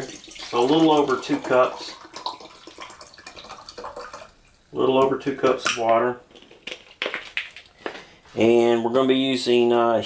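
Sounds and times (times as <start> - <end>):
plastic bottle crinkling: 6.3 - 8.2.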